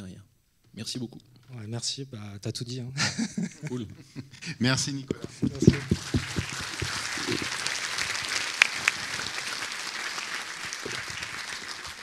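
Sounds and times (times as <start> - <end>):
audience applauding: 5.1 - 12.0.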